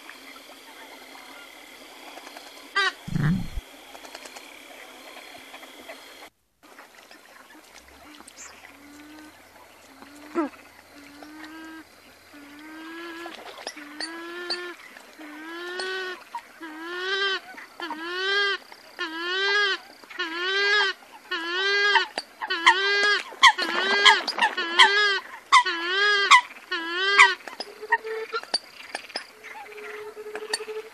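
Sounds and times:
bird calling: 3.1s - 3.6s.

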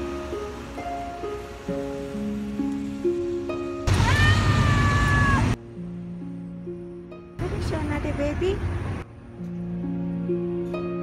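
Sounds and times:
soft background music: 0.0s - 3.9s, 5.2s - 11.0s.

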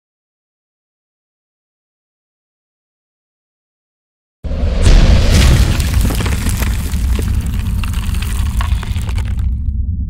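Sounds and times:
deep boom: 4.5s - 10.0s
crackling rumble: 4.8s - 10.0s.

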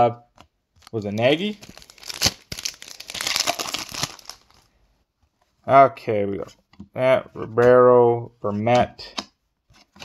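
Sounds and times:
wrapper crinkling: 0.8s - 4.7s.

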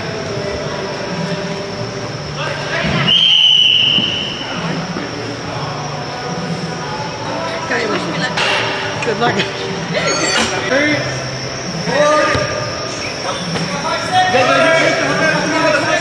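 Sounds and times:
referee's whistle blast: 3.0s - 4.5s.

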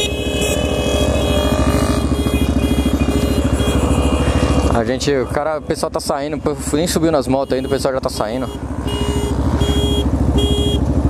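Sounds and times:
short horn beeps: 0.0s - 4.5s, 7.4s - 10.8s
motorcycle engine idling: 0.0s - 11.0s.

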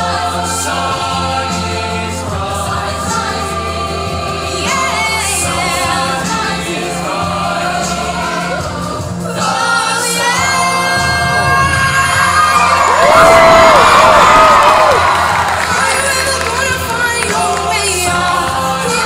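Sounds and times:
choir singing: 0.0s - 19.0s
audience cheering and whooping: 12.1s - 16.8s.

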